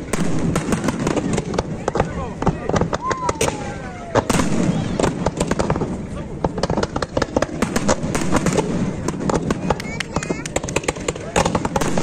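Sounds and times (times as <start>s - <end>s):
fireworks bangs and crackles: 0.0s - 12.0s.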